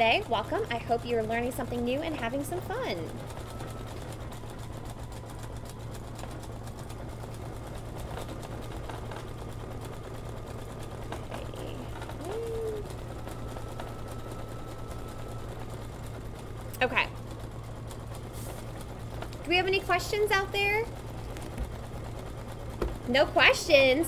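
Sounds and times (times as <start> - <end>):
embroidery machine needle stitching: 0.0 - 24.0
low motor hum: 0.0 - 24.0.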